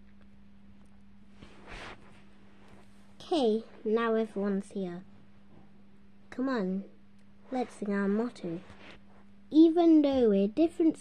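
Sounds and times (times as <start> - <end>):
soft scuff on carpet: 1.4 - 3.1.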